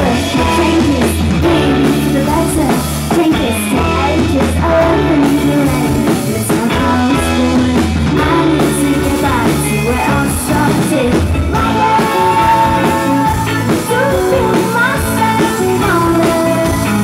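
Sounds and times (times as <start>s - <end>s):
drums: 0.0s - 17.0s
electric guitar: 0.0s - 17.0s
woman singing: 0.0s - 17.0s.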